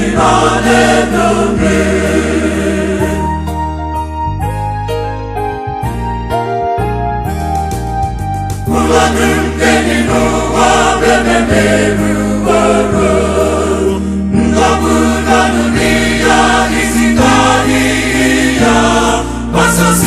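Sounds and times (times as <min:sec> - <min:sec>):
choir singing in harmony: 0:00.0 - 0:03.7, 0:08.7 - 0:20.0.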